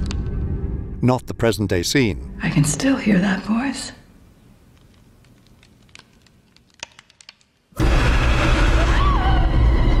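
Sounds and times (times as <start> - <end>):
horror jump-scare music sting: 7.8 - 10.0.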